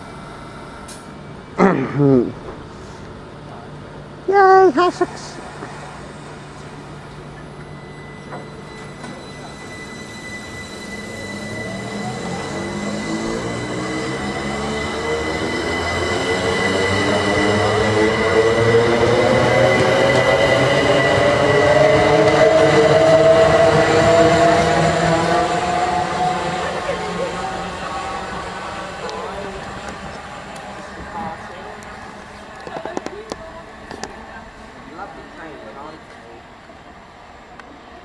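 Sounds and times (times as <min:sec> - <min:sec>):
train wheel and rail noise: 0:00.0 - 0:01.6, 0:02.3 - 0:38.0
electric train motor whine: 0:05.5 - 0:34.1.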